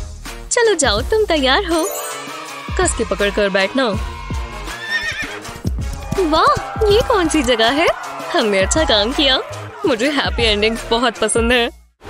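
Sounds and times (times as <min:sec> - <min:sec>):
background music: 0:00.0 - 0:12.0
horse whinny: 0:04.7 - 0:05.5.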